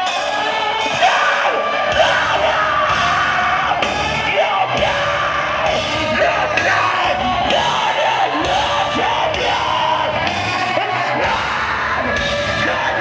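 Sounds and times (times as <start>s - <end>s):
live metal band playing: 0.0s - 13.0s.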